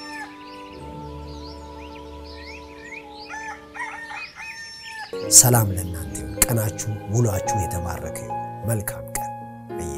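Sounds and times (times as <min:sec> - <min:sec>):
birds chirping: 0:00.0 - 0:09.9
rooster crowing: 0:03.3 - 0:05.2
sustained music chord: 0:05.2 - 0:09.9.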